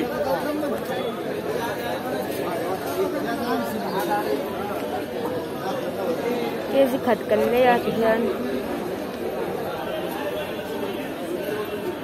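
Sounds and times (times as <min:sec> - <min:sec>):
hubbub of overlapping voices: 0:00.0 - 0:12.0.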